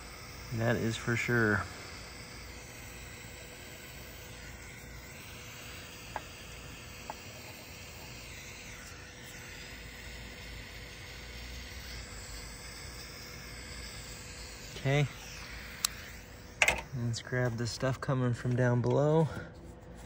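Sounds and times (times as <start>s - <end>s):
mini torch hissing: 0.0s - 17.9s.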